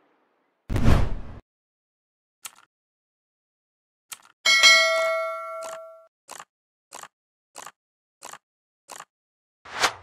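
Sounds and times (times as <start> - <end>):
notification bell ding: 4.5 - 6.1.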